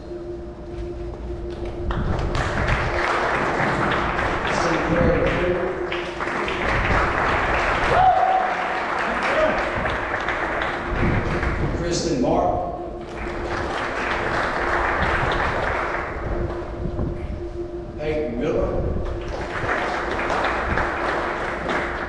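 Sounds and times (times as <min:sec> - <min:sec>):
audience clapping: 0:01.5 - 0:12.1, 0:13.0 - 0:16.7, 0:19.0 - 0:22.0
voices: 0:01.6 - 0:21.8.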